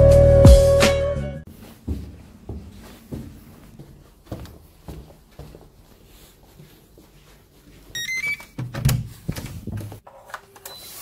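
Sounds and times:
key-card lock beeps: 0:08.0 - 0:08.6, 0:10.6 - 0:11.0.

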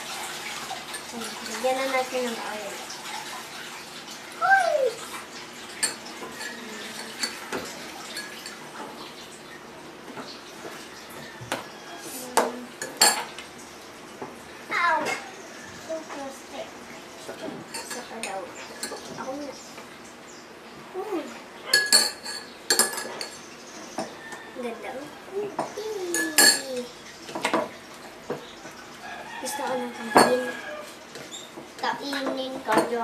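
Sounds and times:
utensils and dishes clinking: 0:00.6 - 0:02.3, 0:05.7 - 0:09.2, 0:10.1 - 0:13.4, 0:17.3 - 0:19.4, 0:21.7 - 0:24.5, 0:25.6 - 0:33.0
utensil clinking against bowl: 0:21.7 - 0:24.2, 0:25.6 - 0:27.7, 0:29.6 - 0:30.7.

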